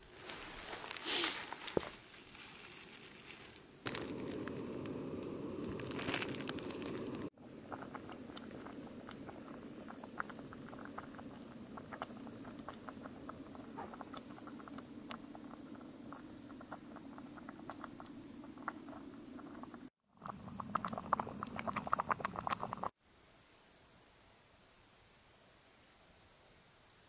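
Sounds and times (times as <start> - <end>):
faint steady hiss: 0.0 - 22.0, 22.6 - 27.0
food bubbling in a pot: 3.8 - 23.0
gas burner sound: 3.9 - 15.5.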